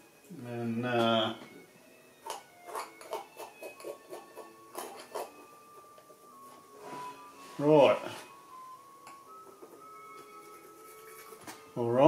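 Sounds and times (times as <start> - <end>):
palette knife scraping paint: 2.7 - 5.5, 10.3 - 11.7.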